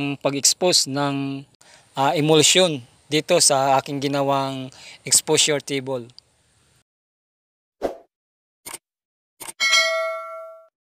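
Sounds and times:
notification bell ding: 9.6 - 10.7.

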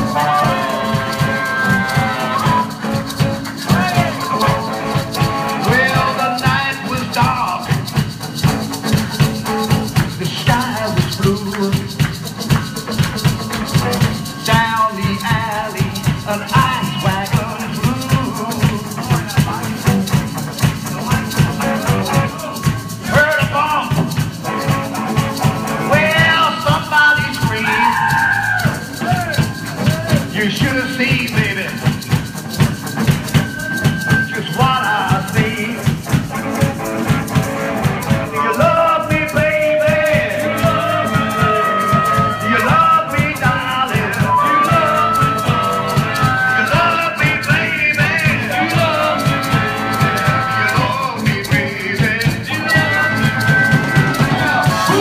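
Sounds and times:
electric guitar: 0.0 - 55.0
harmonica bent notes: 0.0 - 55.0
maracas shaking: 0.0 - 55.0
steady drum beat: 0.0 - 55.0.

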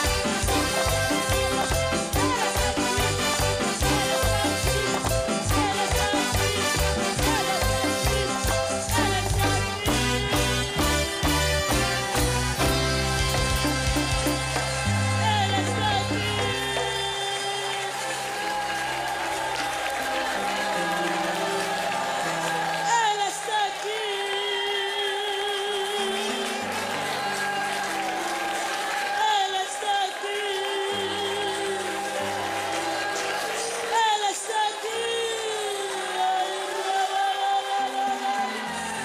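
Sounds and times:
bass line: 0.0 - 17.3
live band held chords: 0.0 - 24.0.

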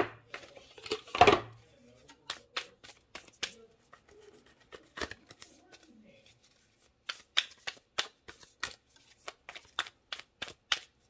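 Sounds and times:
cards shuffled by hand: 2.0 - 11.0.

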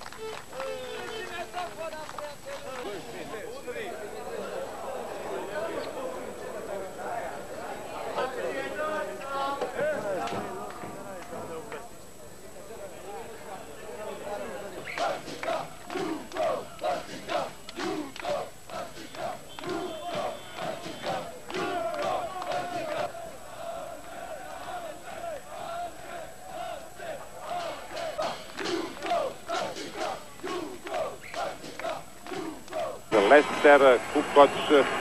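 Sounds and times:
crowd clapping: 0.0 - 3.8, 9.6 - 11.7, 14.9 - 23.1, 27.4 - 35.0
crowd chanting and shouting: 0.0 - 35.0.

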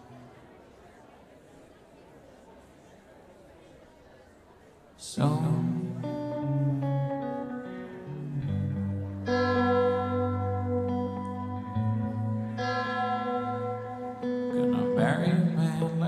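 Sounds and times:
live band playing slow chords: 5.1 - 16.0.

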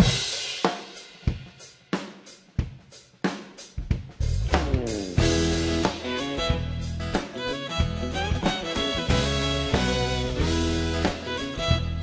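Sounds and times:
drum kit beat: 0.0 - 12.0
bass and pitched instruments: 4.2 - 12.0.

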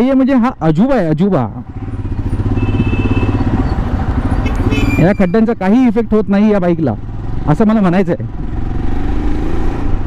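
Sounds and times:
motorcycle engine low rumble: 0.0 - 10.0.

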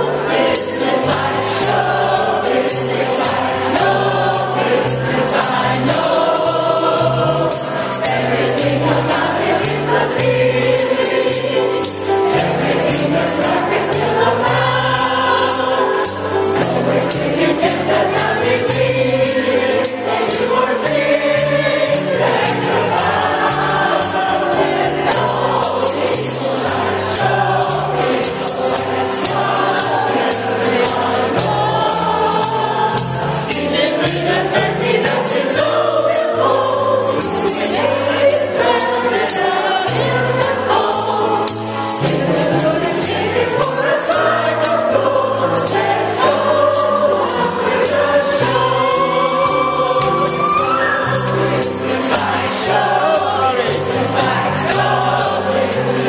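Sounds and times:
women singing in chorus: 0.0 - 56.0.

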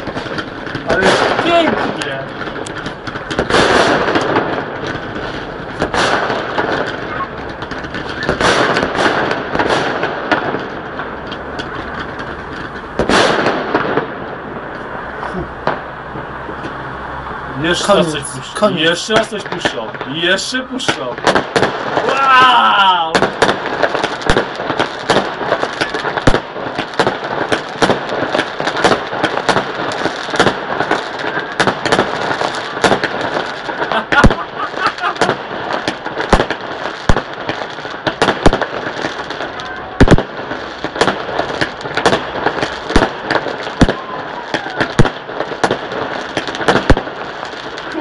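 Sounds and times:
fireworks crackling and banging: 0.0 - 48.0.

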